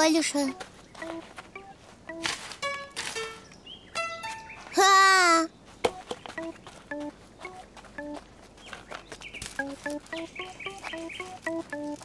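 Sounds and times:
plucked-string cartoon music: 0:00.0 - 0:04.9, 0:05.9 - 0:08.2, 0:09.6 - 0:12.0.

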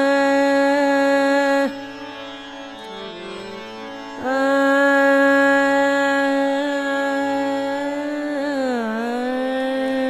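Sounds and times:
woman singing long note: 0:00.0 - 0:01.8, 0:04.2 - 0:10.0
tanpura drone: 0:00.0 - 0:10.0.

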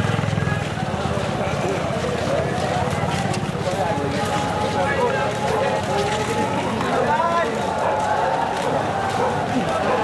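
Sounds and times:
crowd voices calling out: 0:00.0 - 0:10.0
footsteps on road: 0:00.0 - 0:10.0.

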